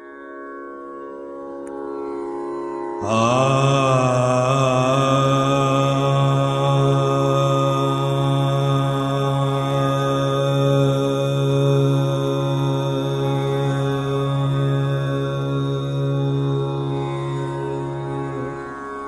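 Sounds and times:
low drone with overtones: 3.0 - 19.0.

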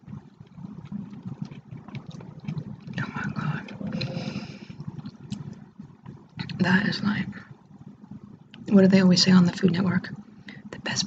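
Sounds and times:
low microphone rumble: 0.0 - 11.0
mouth chewing clicks: 0.4 - 6.6.

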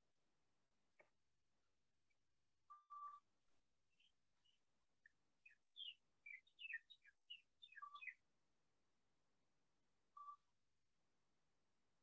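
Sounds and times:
faint bird chirps: 2.6 - 3.3, 3.9 - 8.3, 10.1 - 10.6.

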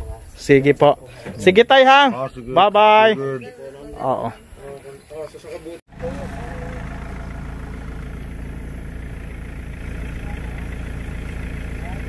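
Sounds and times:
vehicle engine idling: 5.9 - 12.0.

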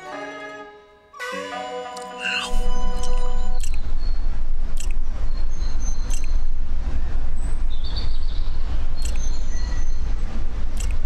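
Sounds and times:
deep rumble: 2.5 - 11.0
sharp click: 3.0 - 3.8, 4.8 - 5.0, 6.1 - 6.4, 9.0 - 9.3, 10.8 - 11.0.

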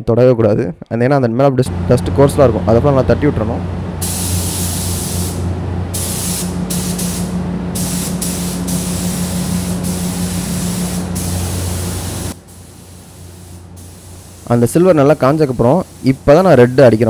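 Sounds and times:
low steady hum: 1.6 - 17.0
spray gun air hiss: 4.0 - 17.0.

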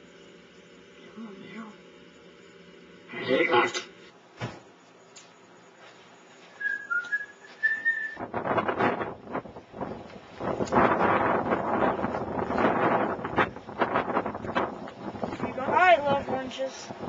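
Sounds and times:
person whistling: 6.6 - 8.2
gusty wind on microphone: 8.1 - 17.0.

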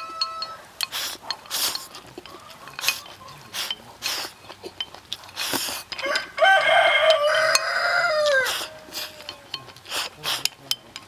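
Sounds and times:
rooster crowing: 0.0 - 0.7, 6.0 - 9.5.

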